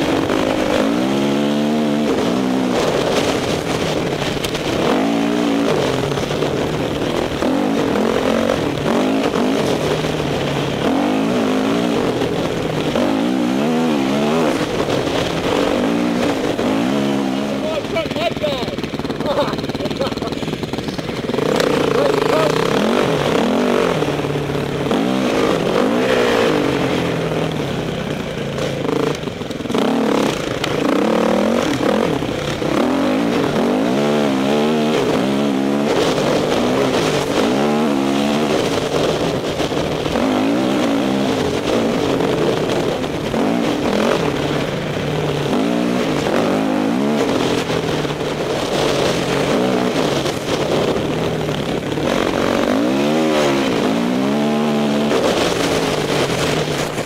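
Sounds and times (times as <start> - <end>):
dirt bike engine revving: 0.0 - 57.0
wind rushing over microphone: 0.0 - 57.0.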